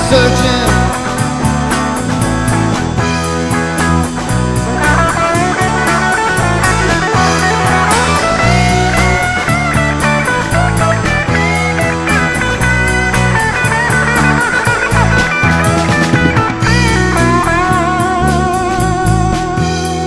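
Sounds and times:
bass guitar: 0:00.0 - 0:20.0
lead guitar with bent notes: 0:00.0 - 0:20.0
steady drum beat: 0:00.0 - 0:20.0.

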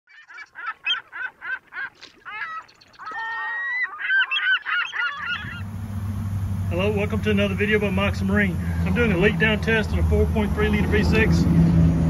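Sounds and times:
birds calling: 0:00.1 - 0:11.9
low steady hum: 0:05.1 - 0:12.0.

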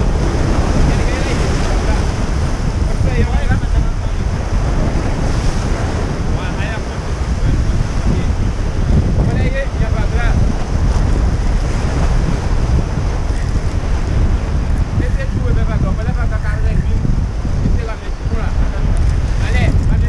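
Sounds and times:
surf breaking over rocks: 0:00.0 - 0:20.0
wind buffeting microphone: 0:00.0 - 0:20.0.

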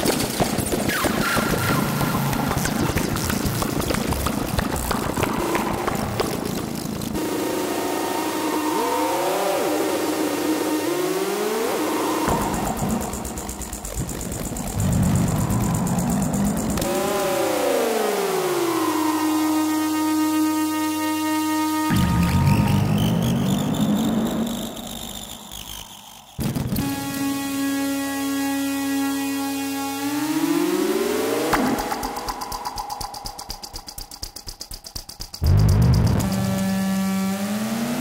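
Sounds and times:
analog synthesizer tones: 0:00.9 - 0:34.1
synthesizer high hiss: 0:07.2 - 0:25.5.

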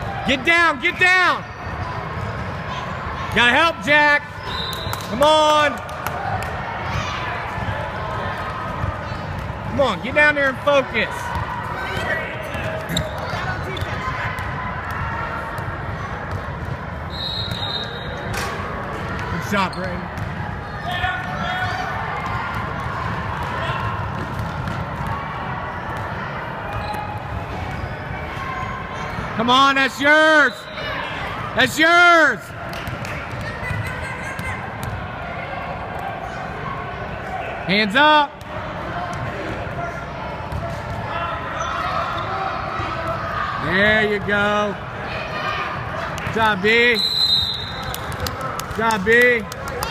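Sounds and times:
faint voices in hall: 0:00.0 - 0:49.9
basketball bouncing on hardwood court: 0:20.0 - 0:20.4, 0:22.2 - 0:25.2
high whistle blast: 0:47.0 - 0:47.9.

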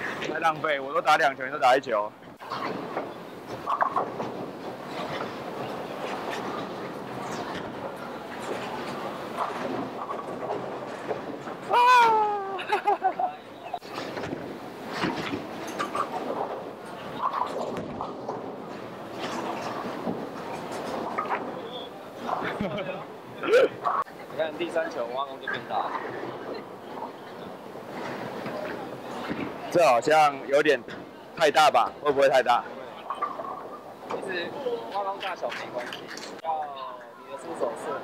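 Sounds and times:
bowling balls rolling: 0:00.0 - 0:36.4
person calling out loudly: 0:11.7 - 0:12.6.

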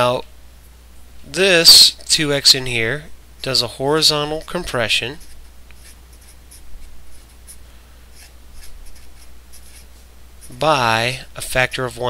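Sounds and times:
marker scratching on paper: 0:04.3 - 0:10.6.

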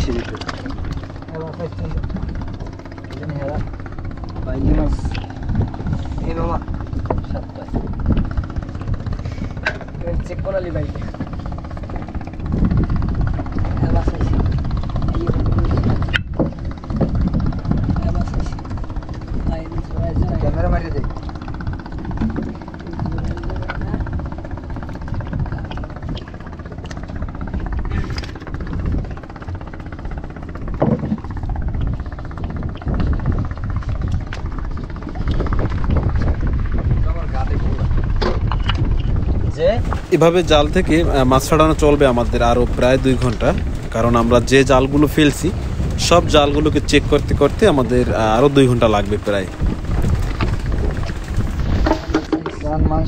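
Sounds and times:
boat engine rumbling: 0:00.0 - 0:53.0.

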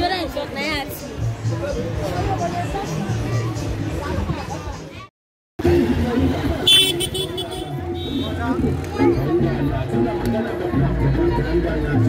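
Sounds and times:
crowd chatter: 0:00.0 - 0:12.0
vehicles moving: 0:00.0 - 0:12.0
high-pitched vehicle horn toot: 0:06.6 - 0:08.4.

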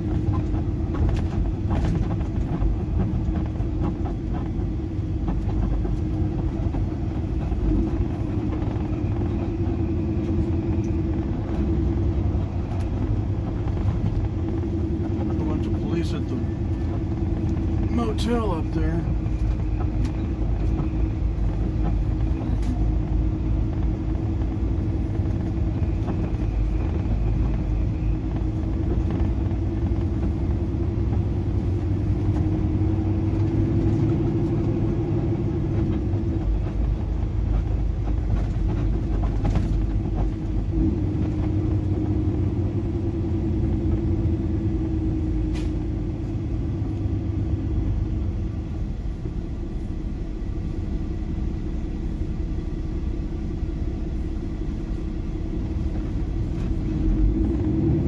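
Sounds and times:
road noise: 0:00.0 - 0:58.0
truck diesel engine running: 0:00.0 - 0:58.0.

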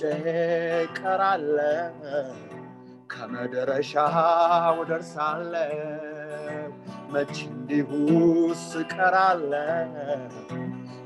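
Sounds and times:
man singing a hymn: 0:00.0 - 0:02.4, 0:03.1 - 0:10.6
acoustic guitar: 0:00.0 - 0:11.0.

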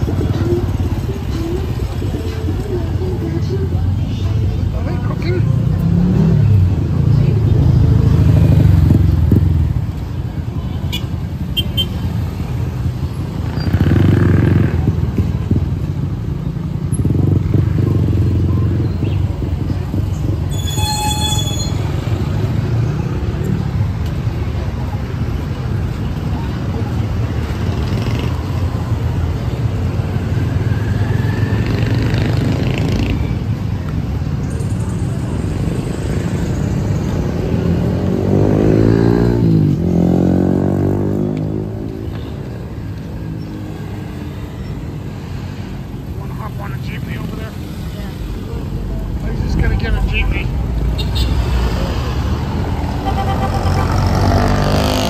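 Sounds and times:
street traffic: 0:00.0 - 0:55.0.

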